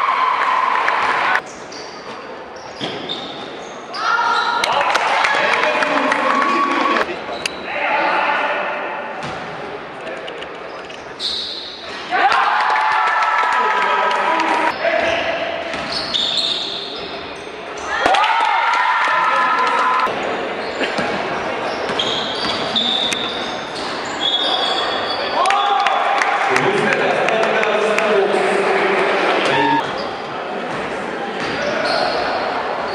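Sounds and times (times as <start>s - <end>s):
voices echoing in hall: 0.0s - 32.9s
basketball bouncing on court: 15.0s - 16.1s.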